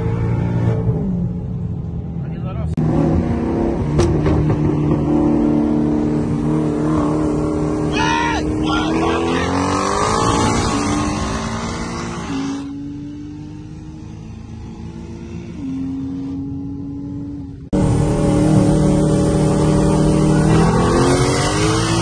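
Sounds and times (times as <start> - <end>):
person shouting: 7.9 - 9.7
car engine running hard: 13.5 - 22.0.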